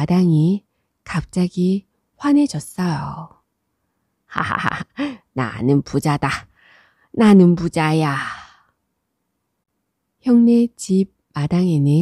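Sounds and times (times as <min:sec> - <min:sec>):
woman speaking: 0:00.0 - 0:03.4, 0:04.3 - 0:06.5, 0:07.2 - 0:08.6, 0:10.2 - 0:12.0.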